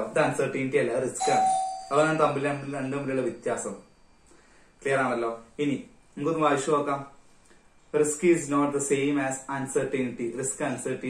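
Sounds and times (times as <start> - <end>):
man lecturing: 0.0 - 3.8, 4.8 - 7.1, 8.0 - 11.0
brief chime-like tone: 1.2 - 4.1.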